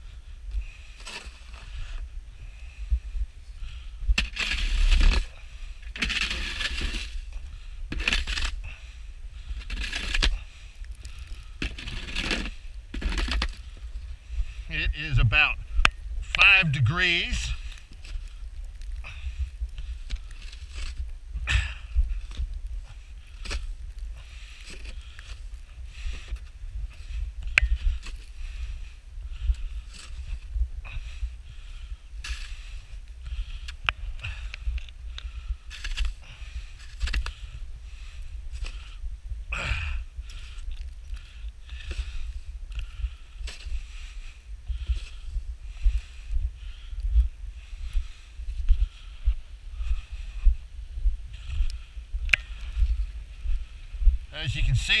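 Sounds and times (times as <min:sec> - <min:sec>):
wind rumble on microphone: 0:00.0 - 0:55.0
shovel scraping snow: 0:04.2 - 0:05.3, 0:06.0 - 0:07.2.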